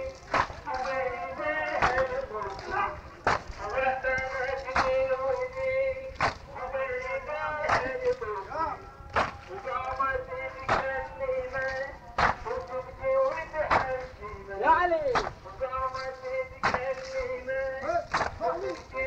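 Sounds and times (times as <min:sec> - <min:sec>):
chest beating in unison: 0:00.0 - 0:15.7, 0:17.8 - 0:19.0
man chanting a lament: 0:00.0 - 0:19.0.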